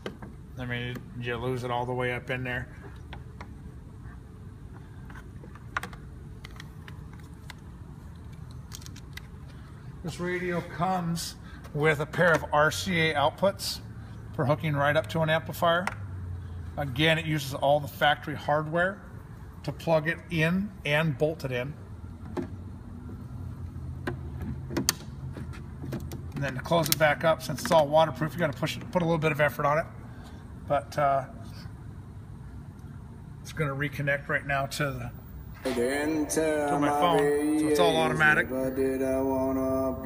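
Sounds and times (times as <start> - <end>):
steady low hum: 34.4 - 40.0.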